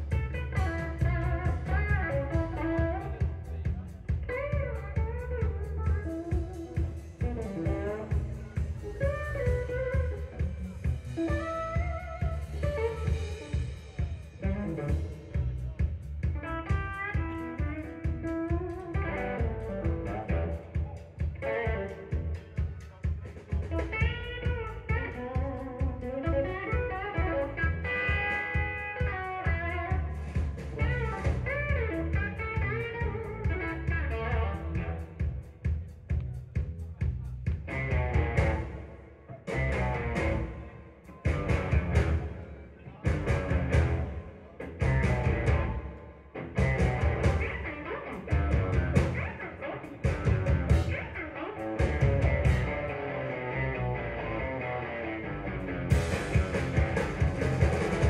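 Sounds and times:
electric guitar lead: 0.0 - 35.6, 37.6 - 58.0
bass guitar: 0.0 - 58.0
drum kit: 0.0 - 58.0.

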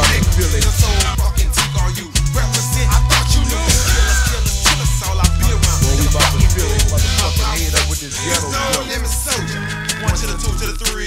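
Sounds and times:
rapping over deep bass: 0.0 - 11.0.

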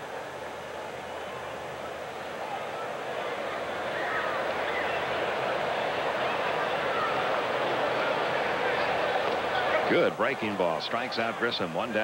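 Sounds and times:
hum of many voices: 0.0 - 12.0.

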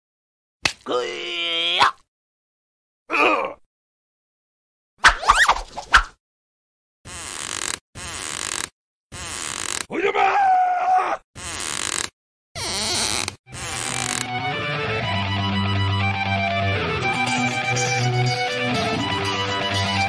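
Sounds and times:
strained wavering yell: 9.9 - 11.2
guitar music: 13.6 - 20.0.

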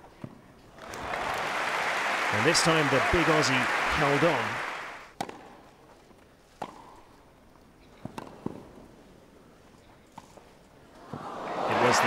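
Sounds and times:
hushed crowd: 0.8 - 5.1, 11.0 - 12.0
tennis ball hit and bouncing: 5.2 - 5.6, 6.6 - 7.0, 8.0 - 8.7.

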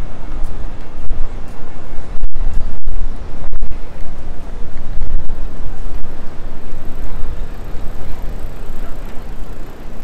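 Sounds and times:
hum of people: 0.0 - 10.0
traffic rumble: 0.0 - 10.0.

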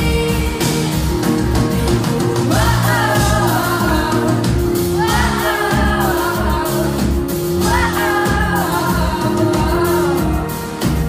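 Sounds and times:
pop song with sung vocals: 0.0 - 11.0.

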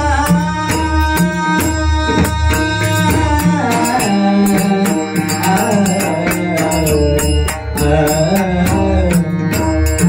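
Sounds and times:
man singing into microphone: 0.0 - 10.0.

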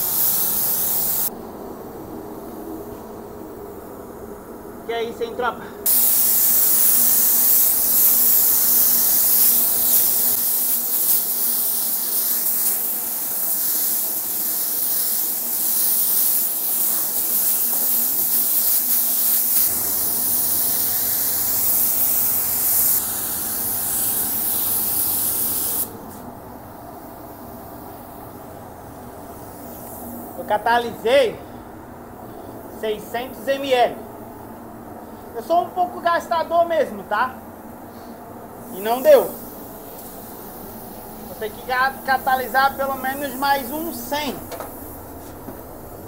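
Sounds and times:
spray gun hissing: 0.0 - 1.3, 5.8 - 31.2, 37.7 - 46.0
low background hum: 0.0 - 46.0.

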